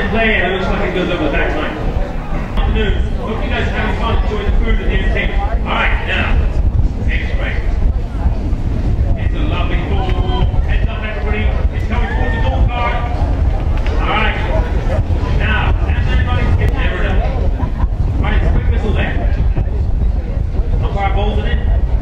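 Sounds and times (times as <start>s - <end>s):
indistinct talking: 0.0s - 22.0s
steady low rumble: 0.0s - 22.0s.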